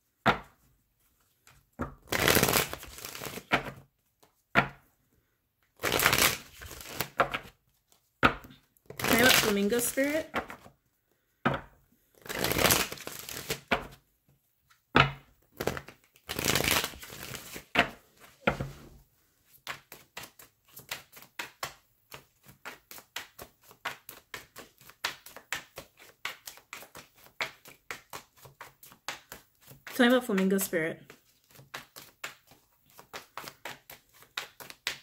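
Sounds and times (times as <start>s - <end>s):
cards swishing: 1.2s - 4.3s, 5.8s - 7.5s, 12.1s - 14.0s, 15.6s - 18.9s, 19.6s - 35.0s.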